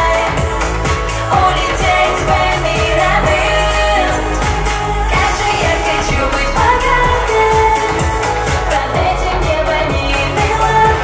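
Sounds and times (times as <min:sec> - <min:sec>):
amplified music with beat: 0:00.0 - 0:11.0
woman singing pop song: 0:00.0 - 0:11.0.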